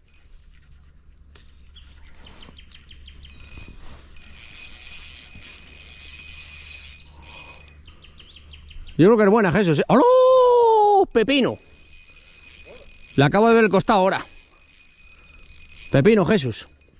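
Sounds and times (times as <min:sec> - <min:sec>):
fishing reel drag buzzing: 0:00.0 - 0:01.0, 0:02.0 - 0:08.0, 0:10.4 - 0:16.9
birds chirping: 0:00.0 - 0:16.9.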